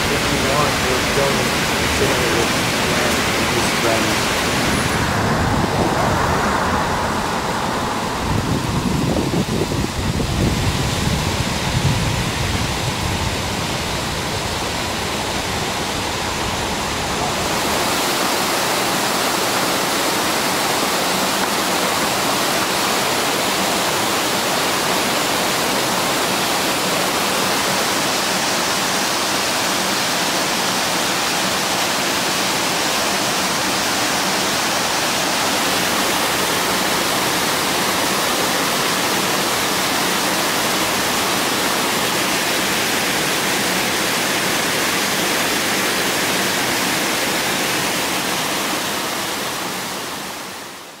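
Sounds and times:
small waterfall rushing over rocks: 0.0 - 51.0.

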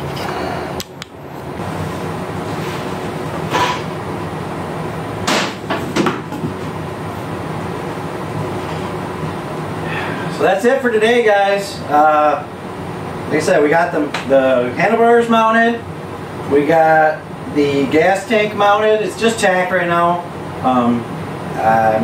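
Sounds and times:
steady background hum: 0.0 - 22.0.

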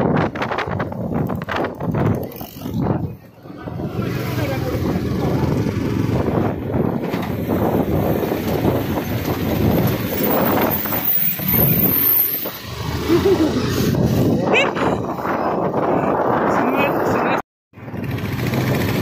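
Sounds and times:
traffic passing: 0.0 - 17.0
rushing road and air noise: 0.0 - 19.0
motorcycle engine running: 2.2 - 9.6, 17.8 - 19.0.

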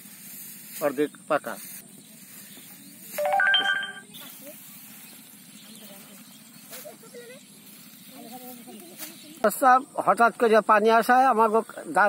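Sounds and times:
rising electronic chime: 3.2 - 4.1.

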